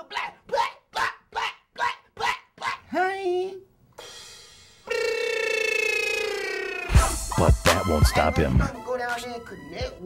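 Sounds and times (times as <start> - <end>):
man barking like a dog: 0.0 - 2.9.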